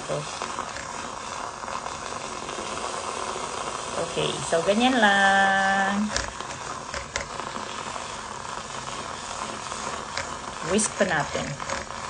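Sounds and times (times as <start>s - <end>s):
milk frother whisking: 0.0s - 12.0s.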